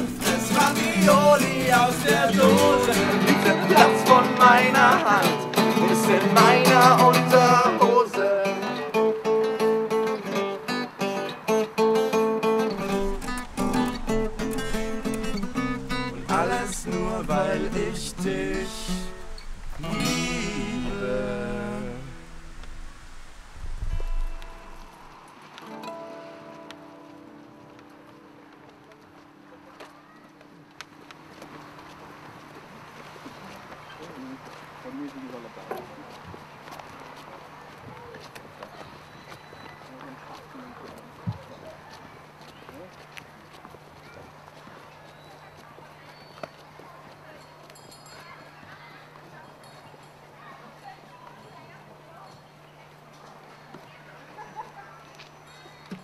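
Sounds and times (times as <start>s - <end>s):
faint indistinct voices: 12.0s - 25.1s, 26.5s - 56.0s
low hum: 12.7s - 25.2s
light footsteps: 12.7s - 50.2s.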